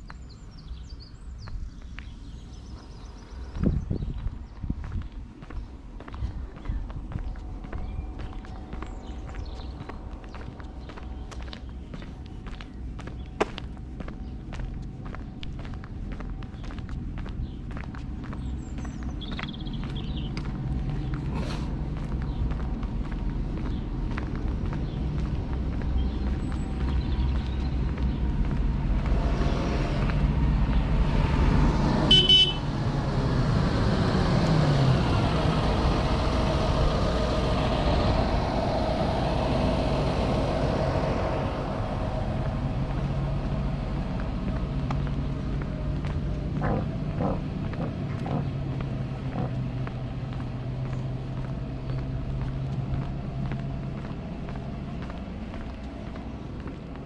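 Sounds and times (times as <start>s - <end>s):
road vehicle passing: 0.0s - 57.0s.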